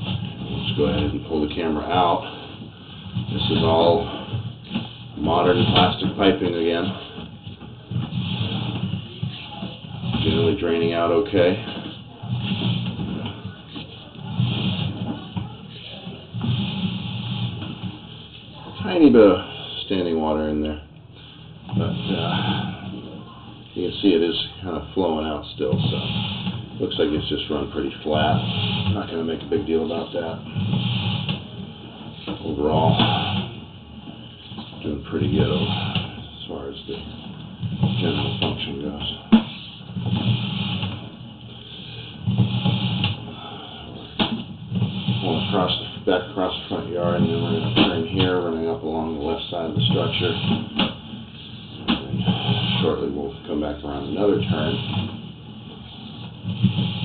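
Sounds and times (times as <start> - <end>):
push cable rasping and rumbling: 0.0 - 57.0.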